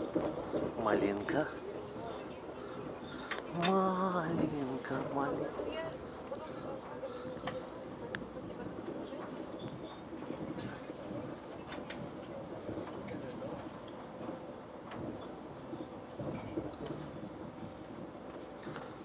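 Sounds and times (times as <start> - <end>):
train running inside carriage: 0.0 - 19.0.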